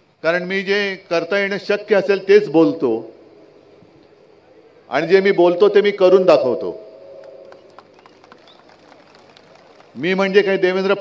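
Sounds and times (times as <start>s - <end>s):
murmur of outdoor crowd: 2.9s - 5.2s, 6.8s - 10.6s
public-address speech echo: 9.9s - 11.0s.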